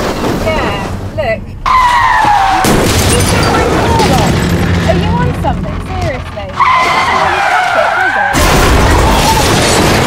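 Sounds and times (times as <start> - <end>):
low rumble: 2.7 - 7.3
tyre screech: 6.6 - 8.4.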